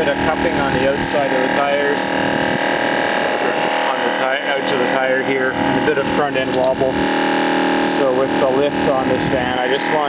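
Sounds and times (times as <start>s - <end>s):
tire inflator droning: 0.0s - 10.0s.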